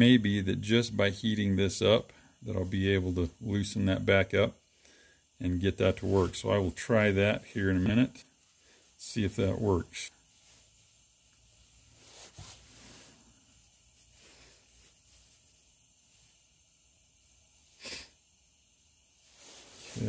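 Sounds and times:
person sniffing: 0:17.8 - 0:18.2.

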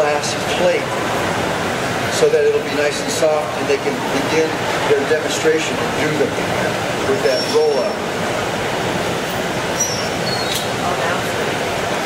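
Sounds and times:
ventilation noise: 0:00.0 - 0:12.0.

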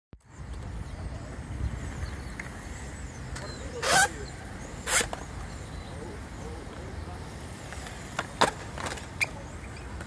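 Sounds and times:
city street rumble: 0:00.2 - 0:10.0.

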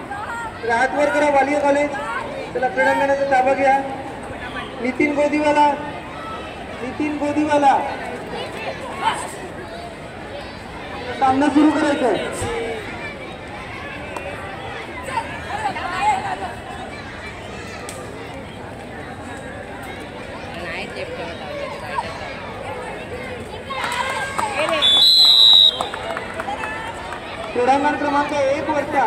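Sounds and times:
faint voices and chatter: 0:00.0 - 0:29.0
referee's whistle blast: 0:24.8 - 0:26.0.

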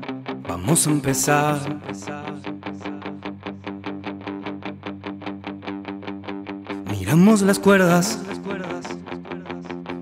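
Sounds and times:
guitar picking short notes: 0:00.0 - 0:10.0.

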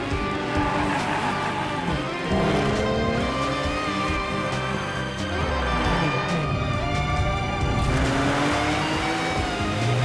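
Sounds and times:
background music: 0:00.0 - 0:10.0
car engines revving: 0:00.0 - 0:10.0.

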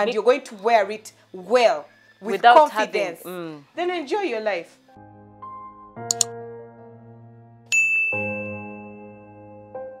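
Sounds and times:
lower chime: 0:07.7 - 0:09.2.

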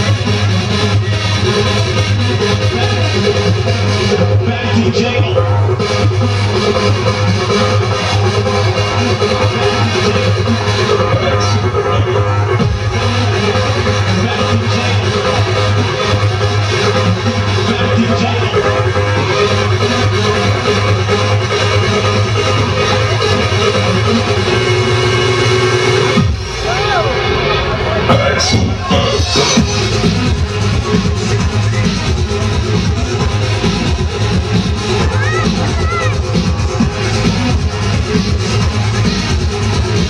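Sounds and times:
electronic dance music: 0:00.0 - 0:40.0
heavy bass: 0:00.0 - 0:40.0.

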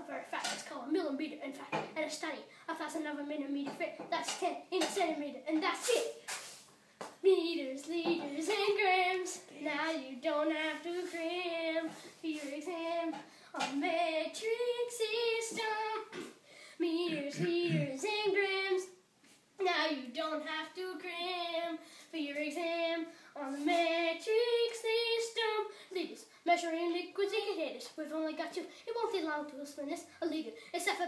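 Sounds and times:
boy singing unaccompanied: 0:00.0 - 0:06.4, 0:07.2 - 0:19.0, 0:19.6 - 0:31.0.

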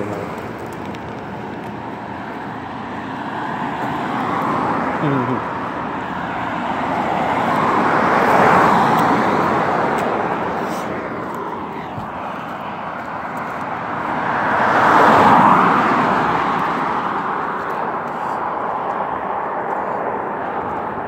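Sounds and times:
cars passing: 0:00.0 - 0:21.0.

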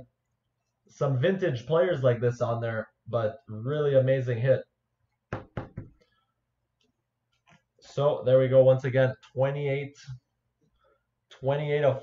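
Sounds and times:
plastic card holder knocks: 0:05.3 - 0:06.0.

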